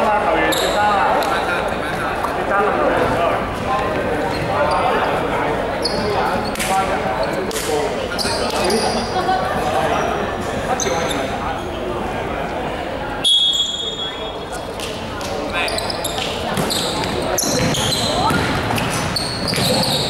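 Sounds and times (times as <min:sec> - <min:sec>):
players calling and chatting: 0:00.0 - 0:20.0
sneakers squeaking on court: 0:04.3 - 0:05.0, 0:05.8 - 0:06.6, 0:15.5 - 0:20.0.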